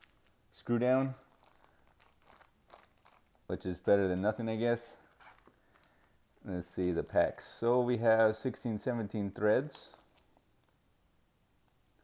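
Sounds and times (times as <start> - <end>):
plastic wrapper crinkling: 0.0 - 7.1, 8.5 - 10.8.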